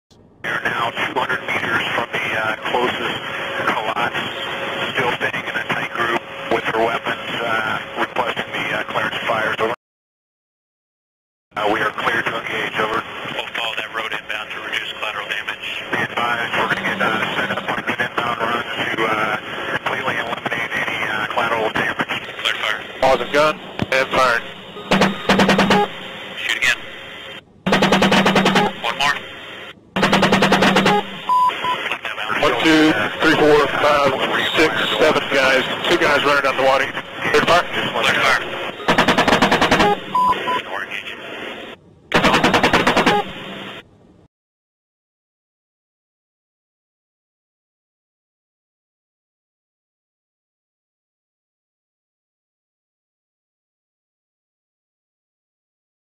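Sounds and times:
cannon firing bursts: 0:24.4 - 0:26.2, 0:27.7 - 0:28.9, 0:30.0 - 0:31.3, 0:38.9 - 0:40.2, 0:42.1 - 0:43.6.

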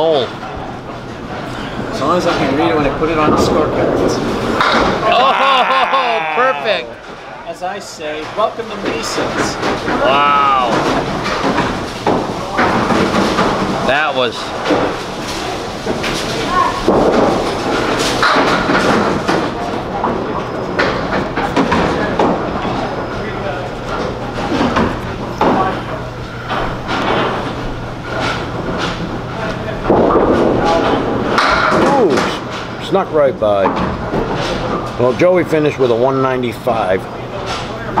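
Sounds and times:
bowling balls rolling on lanes: 0:00.0 - 0:38.0
people talking: 0:01.9 - 0:04.3, 0:05.0 - 0:11.0, 0:13.8 - 0:14.6, 0:31.6 - 0:33.7, 0:35.0 - 0:38.0
bowling pins knocking down: 0:02.3 - 0:06.5, 0:08.2 - 0:32.8.

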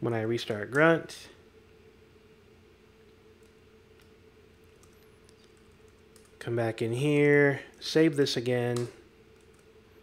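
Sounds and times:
faint steady hum: 0:00.0 - 0:10.0
computer keyboard clicks: 0:04.8 - 0:06.4, 0:08.8 - 0:09.7.

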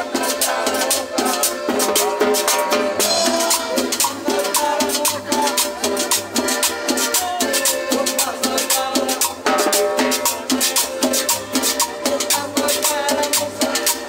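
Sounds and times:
button accordion melody: 0:00.0 - 0:14.0
percussion steady beat: 0:00.0 - 0:14.0
strummed guitar: 0:00.0 - 0:14.0
upright bass: 0:00.0 - 0:14.0.

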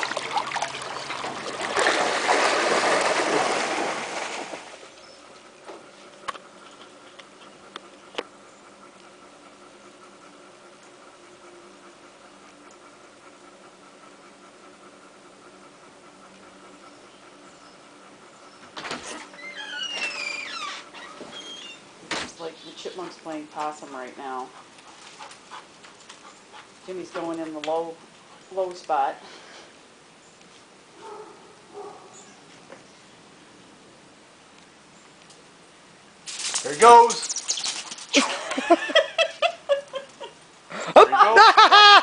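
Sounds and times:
dogs splashing while swimming: 0:00.0 - 0:05.1
high gliding animal squeaks: 0:37.1 - 0:38.0.

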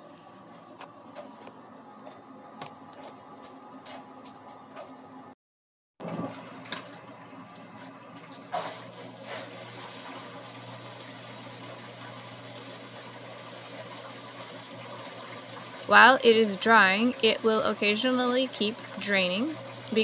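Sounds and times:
washer-dryer drum humming: 0:00.0 - 0:05.4, 0:06.0 - 0:20.0
water rushing down drain: 0:06.0 - 0:20.0.

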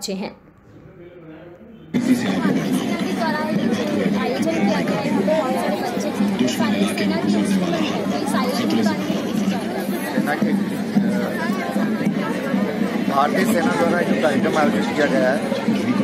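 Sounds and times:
crowd chattering: 0:00.0 - 0:16.0.

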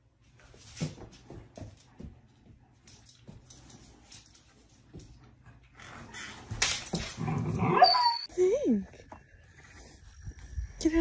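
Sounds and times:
dogs scuffling: 0:00.3 - 0:07.8
dog growling and whining: 0:05.8 - 0:08.3.

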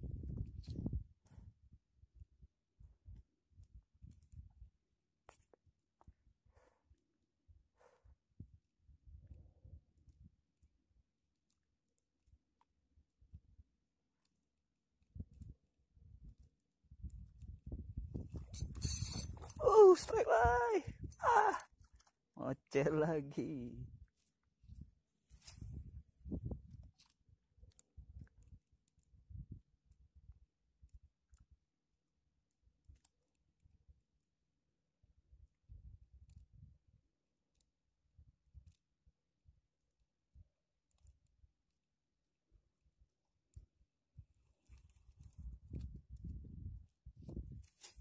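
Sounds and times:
fishing reel clicking: 0:18.6 - 0:19.4.

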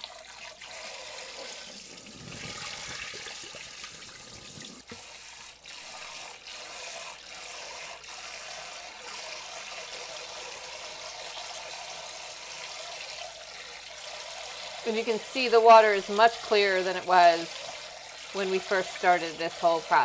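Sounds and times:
rice being rinsed by hand: 0:00.0 - 0:20.0
water splashes: 0:14.5 - 0:20.0.

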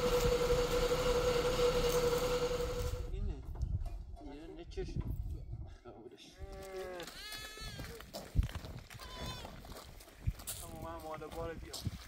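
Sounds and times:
lamb bleating: 0:07.0 - 0:07.9, 0:09.0 - 0:09.5.

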